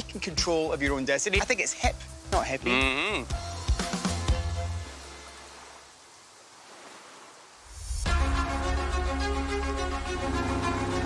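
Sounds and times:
lake water ambience: 3.9 - 8.1.

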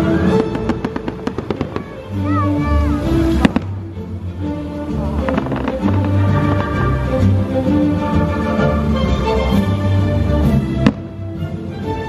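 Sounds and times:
music: 0.0 - 12.0
firework bursts crackling: 0.2 - 4.0, 4.9 - 8.6.

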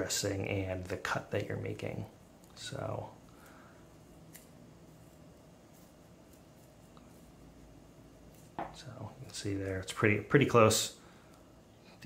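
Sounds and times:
scissors snipping bandage: 4.2 - 4.6.

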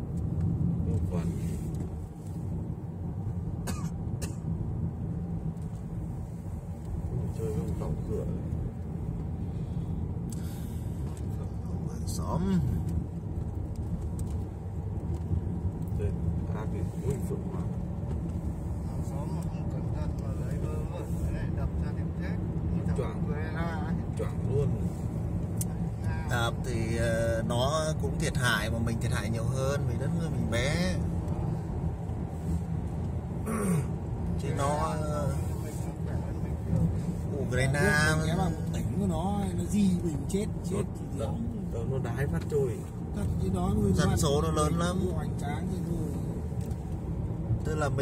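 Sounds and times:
car engine and tyres rumbling: 0.0 - 48.0
people talking: 34.4 - 46.2.

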